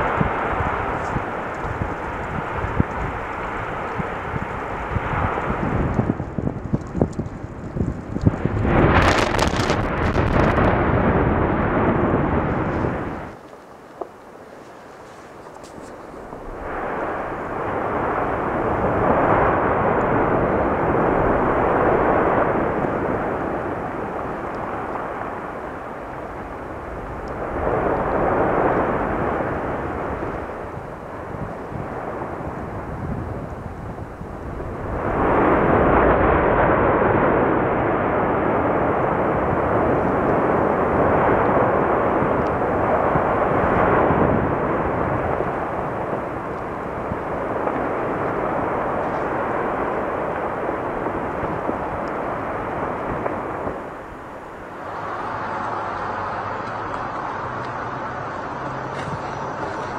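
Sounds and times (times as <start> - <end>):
volcanic eruption roaring: 0.0 - 59.9.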